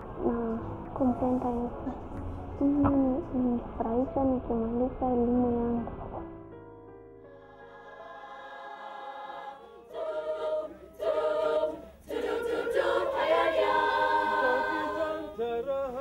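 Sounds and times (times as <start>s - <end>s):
soft background music: 0.0s - 16.0s
girls choir singing a cappella: 7.3s - 15.7s.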